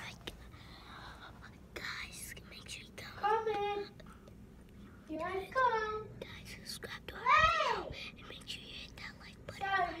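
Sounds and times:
person whispering: 0.0s - 3.2s.

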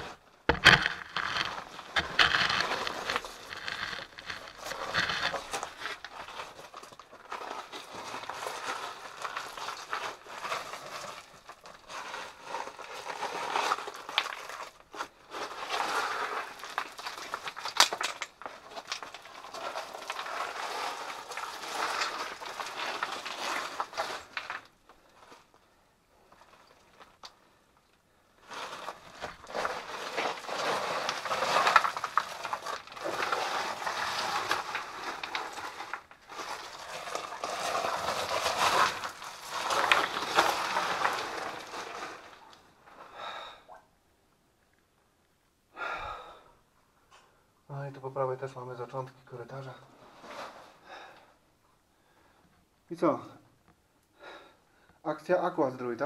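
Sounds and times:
stones clattering: 0.0s - 12.0s, 12.6s - 14.9s, 15.6s - 24.8s, 28.7s - 42.5s
footsteps on rock rubble: 0.0s - 25.6s, 28.7s - 42.5s.

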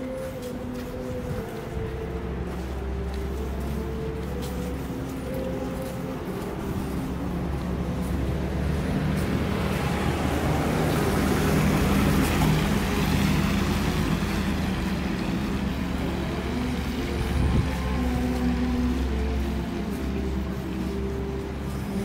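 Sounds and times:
low hum of city traffic: 0.0s - 22.0s
vehicle passing on wet road: 0.0s - 22.0s.

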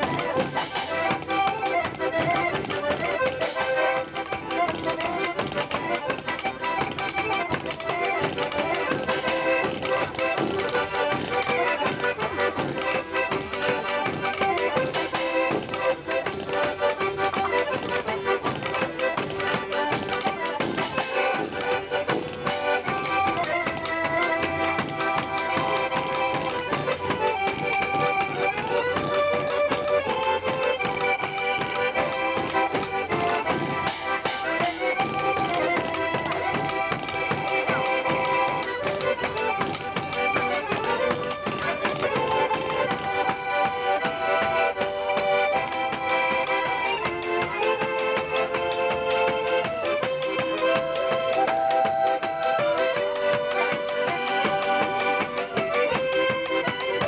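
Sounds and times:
accordion melody: 0.0s - 57.0s
hand drum beating: 0.0s - 57.0s.

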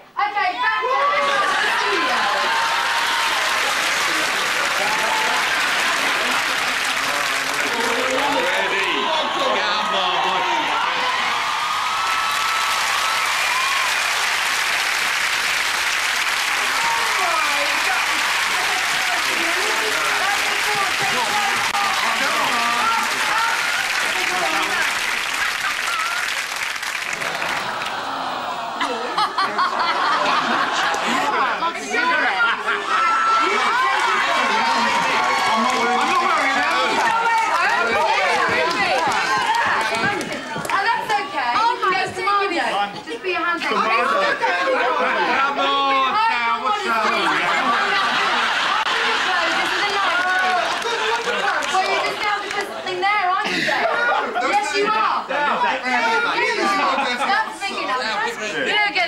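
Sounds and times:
people talking and shouting: 0.0s - 59.0s.

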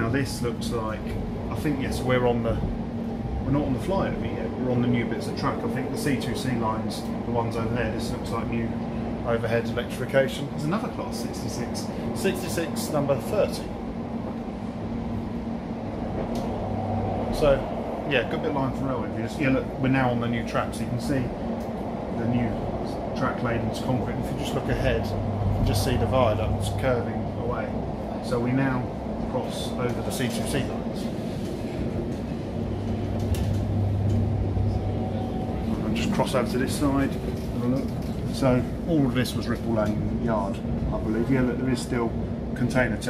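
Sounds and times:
train cabin rumble: 0.0s - 43.0s
steady tone: 22.9s - 28.0s, 31.6s - 37.0s.

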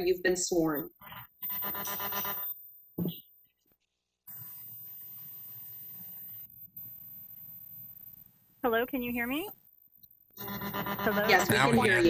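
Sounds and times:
telephone line hiss and hum: 0.0s - 3.3s, 4.3s - 12.0s.

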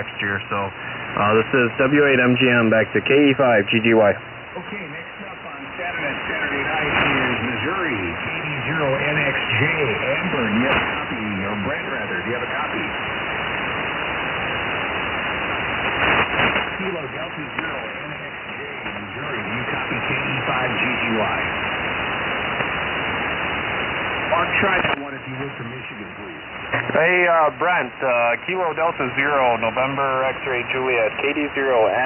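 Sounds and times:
radio static: 0.0s - 32.0s
weak radio voices: 0.0s - 32.0s.

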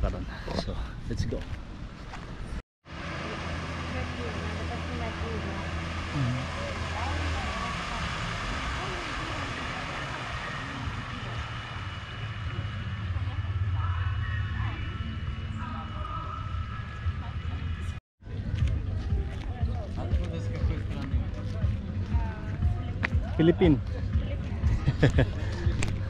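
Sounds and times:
low engine hum: 1.5s - 26.0s.

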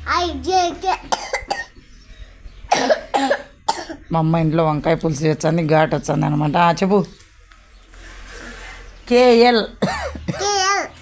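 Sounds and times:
boy speaking: 0.0s - 1.2s, 10.3s - 11.0s.

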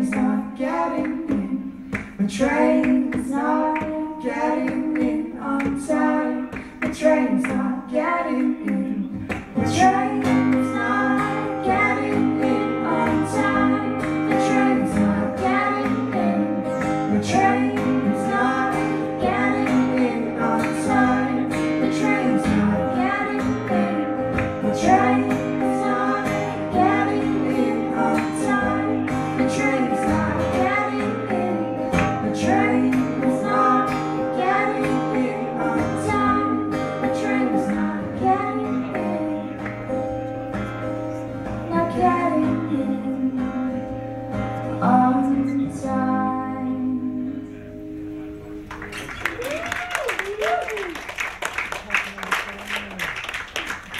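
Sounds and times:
woman singing: 0.0s - 39.7s, 41.4s - 47.6s
strummed acoustic guitar: 8.4s - 49.0s.

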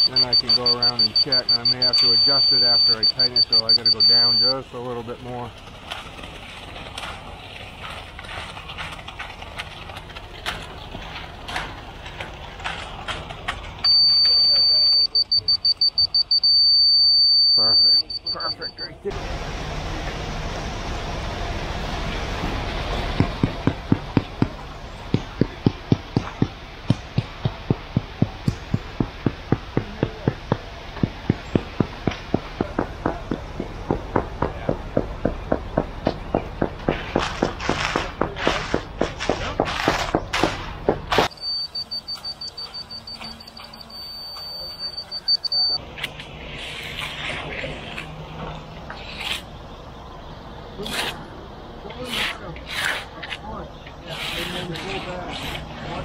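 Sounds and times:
high tone breaking into rapid beeps: 0.0s - 4.6s, 13.8s - 19.0s, 41.3s - 45.8s.

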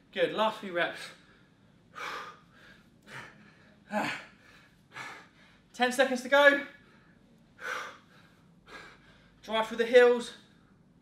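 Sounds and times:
man breathing hard: 1.2s - 5.7s, 6.8s - 9.4s.

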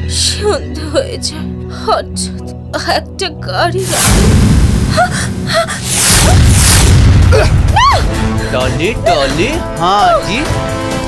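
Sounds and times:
deep rumbling sound effect: 3.8s - 9.7s.

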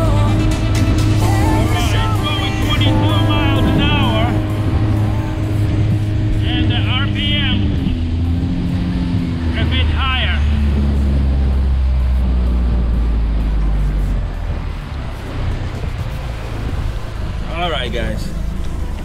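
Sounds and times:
outboard motor running: 0.0s - 19.0s
rushing water: 0.0s - 19.0s
wind: 0.0s - 19.0s.

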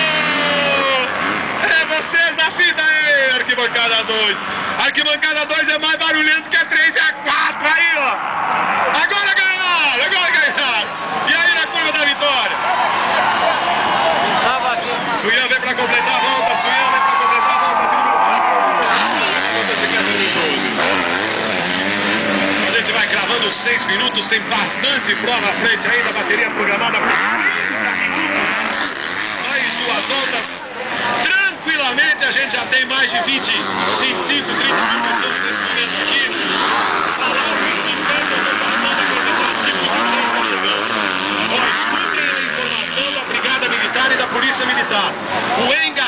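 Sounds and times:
motocross bike engines revving: 0.0s - 46.0s.

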